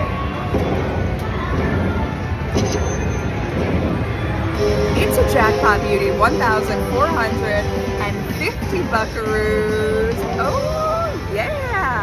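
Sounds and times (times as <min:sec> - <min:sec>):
slot machine bonus music: 0:04.6 - 0:08.9.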